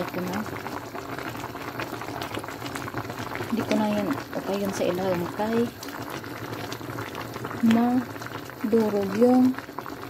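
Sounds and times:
broth bubbling in a pot: 0.0s - 10.0s.

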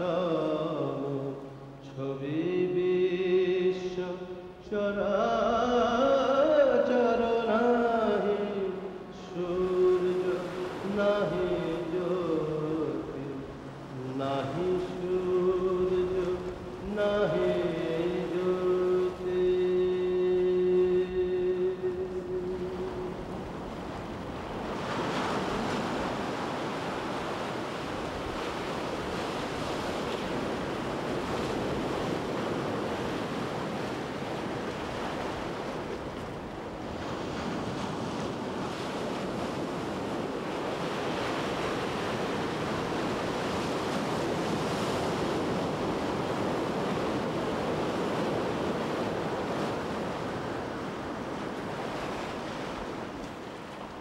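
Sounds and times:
sea waves washing: 5.6s - 54.0s.

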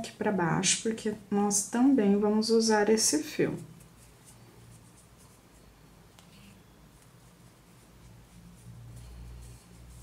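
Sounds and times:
low steady hum: 0.0s - 10.0s
yarn handling sounds: 3.5s - 10.0s.

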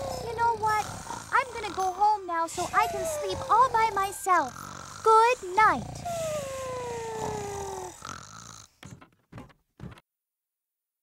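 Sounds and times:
cartoon snoring: 0.0s - 9.0s.

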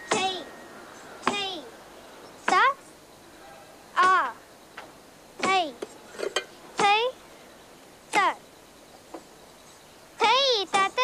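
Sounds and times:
high-pitched gliding vocal calls: 0.0s - 4.5s.

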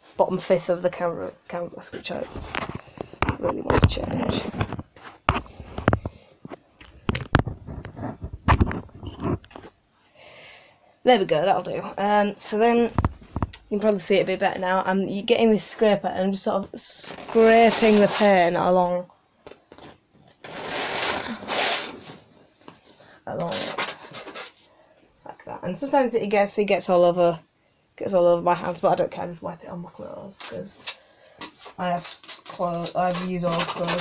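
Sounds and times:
paint scraper on canvas: 17.2s - 18.6s, 20.4s - 22.3s, 31.4s - 34.0s.

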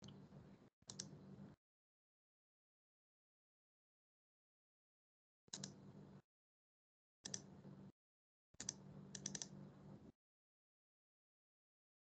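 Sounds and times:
computer keys clicking: 5.5s - 5.8s, 8.6s - 9.5s.

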